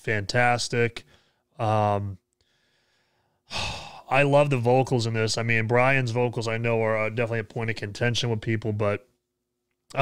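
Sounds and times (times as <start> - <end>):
man sighing: 3.4 - 4.1.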